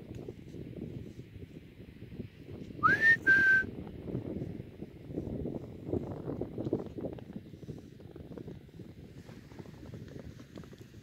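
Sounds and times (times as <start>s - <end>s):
wind rumble on microphone: 0.0s - 11.0s
person whistling a call: 2.8s - 3.7s.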